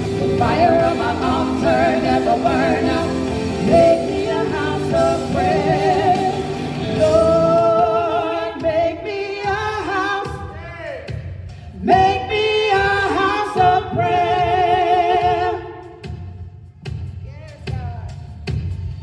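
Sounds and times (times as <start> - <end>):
women singing gospel chorus: 0.0 - 10.5, 11.7 - 16.1.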